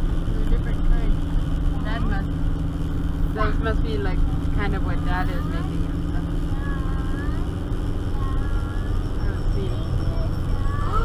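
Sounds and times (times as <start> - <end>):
car engine droning under load: 0.0 - 11.0.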